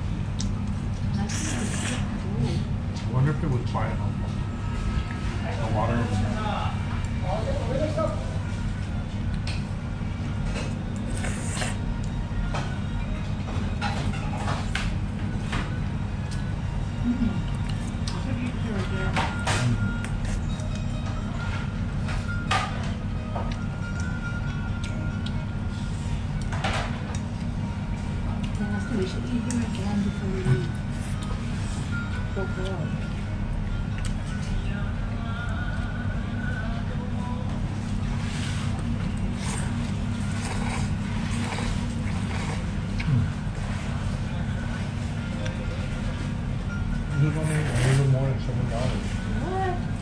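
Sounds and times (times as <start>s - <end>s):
faint background music: 0.0s - 50.0s
steady low hum: 0.0s - 50.0s.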